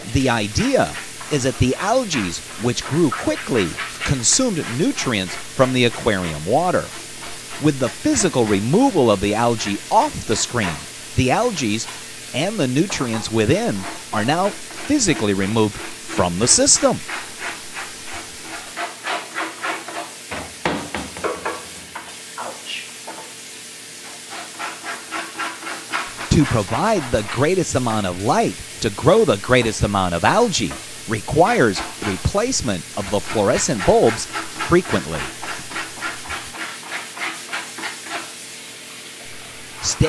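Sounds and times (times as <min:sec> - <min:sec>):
tap water running into sink: 0:00.3 - 0:18.8, 0:19.9 - 0:23.4
scraping algae off a screen: 0:00.3 - 0:19.8.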